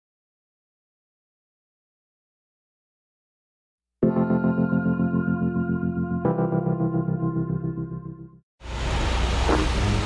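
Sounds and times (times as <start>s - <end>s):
electric piano chords: 4.0s - 8.4s.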